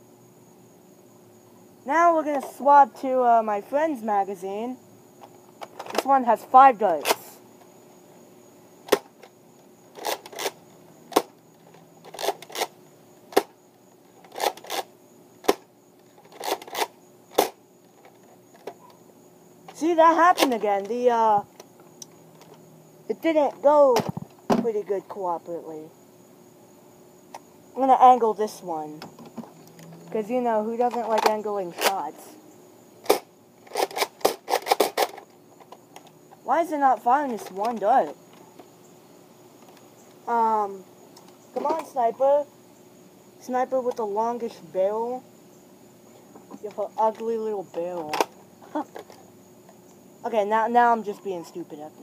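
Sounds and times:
toy blaster shot snapping: 33.0s - 35.2s.

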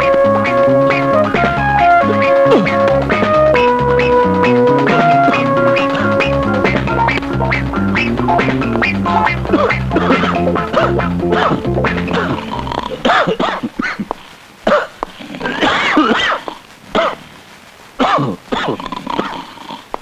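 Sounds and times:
film soundtrack music: 0.0s - 13.0s.

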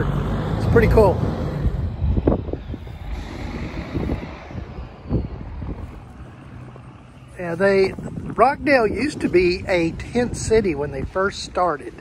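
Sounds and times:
heavy truck engine rumble: 0.0s - 12.0s.

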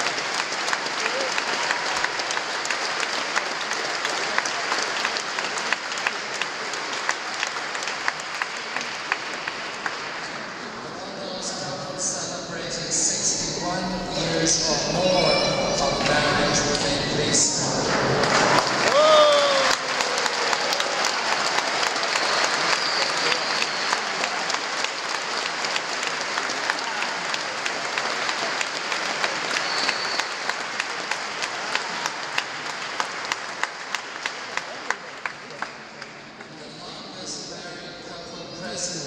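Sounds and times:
congregation applauding: 0.0s - 11.0s, 13.2s - 36.5s
person cheering: 18.8s - 20.9s.

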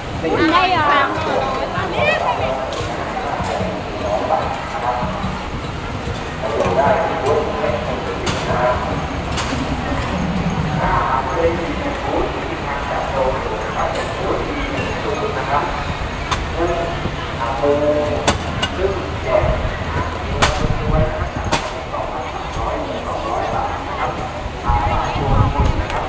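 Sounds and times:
crowd chatter: 0.0s - 26.0s.

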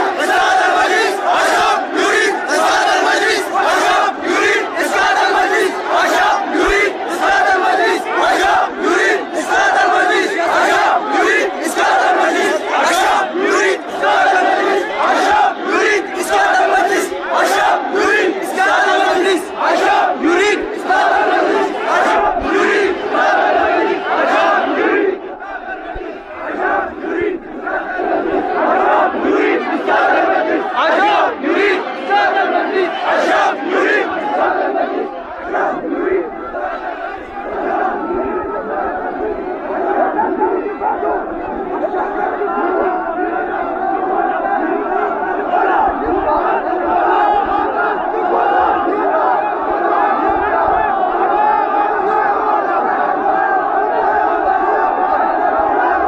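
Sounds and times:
crowd chanting in unison: 0.0s - 56.0s.

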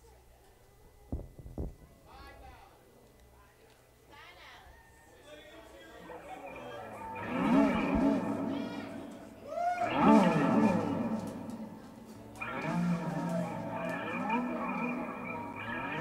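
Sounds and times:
electric guitar sliding phrases: 6.4s - 16.0s.

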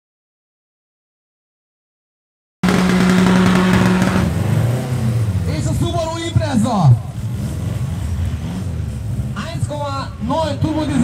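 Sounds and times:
racing car engines revving: 2.6s - 11.0s.

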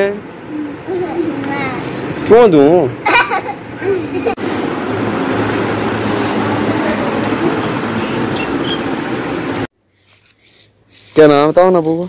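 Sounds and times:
road vehicle running: 0.0s - 12.0s.

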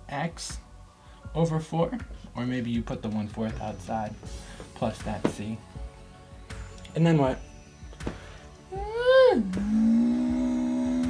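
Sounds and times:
man drawing out a vowel: 8.8s - 11.0s.

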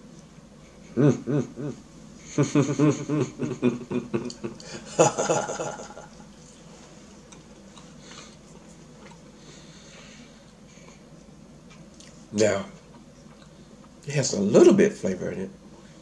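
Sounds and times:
man chuckling: 0.7s - 6.3s
man humming appreciatively: 0.8s - 6.1s
quiet chewing: 6.1s - 14.1s.

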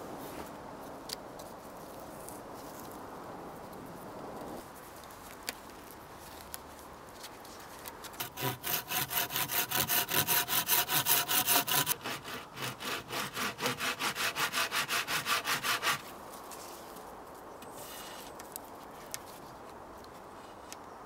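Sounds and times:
hand saw cutting wood: 8.2s - 16.1s.

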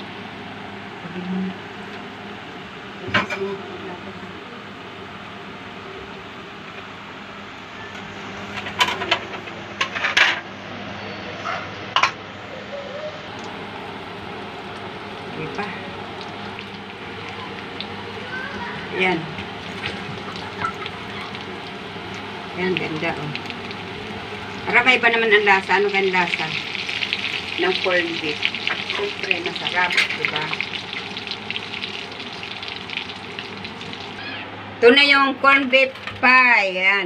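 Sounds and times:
pies frying in hot oil: 13.4s - 34.4s.

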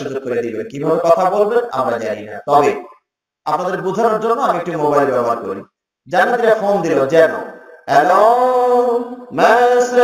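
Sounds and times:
man chanting into a microphone: 4.2s - 10.0s.

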